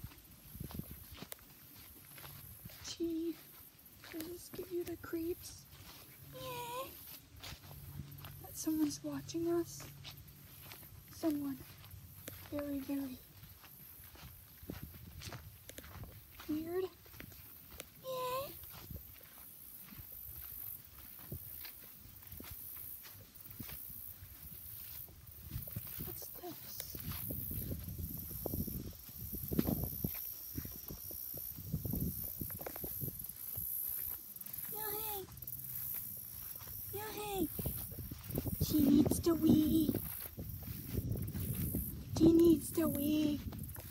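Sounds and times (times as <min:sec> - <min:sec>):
footsteps through grass: 0:00.0 - 0:43.9.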